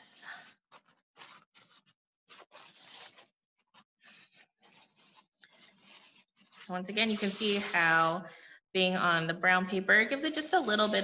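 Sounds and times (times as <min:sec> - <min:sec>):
paper towel rubbing on paper: 0:00.7 - 0:03.3, 0:04.3 - 0:08.3, 0:10.1 - 0:11.0.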